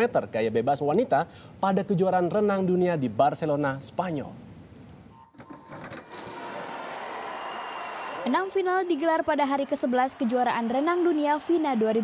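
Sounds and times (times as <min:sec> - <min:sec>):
swimming arena crowd noise: 0:06.0 - 0:12.0.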